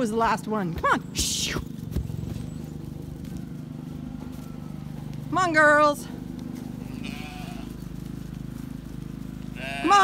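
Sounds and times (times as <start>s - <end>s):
woman's herding call: 0.0s - 1.8s, 2.6s - 8.0s, 9.2s - 10.0s
sheep bleat: 6.7s - 8.0s, 9.4s - 10.0s.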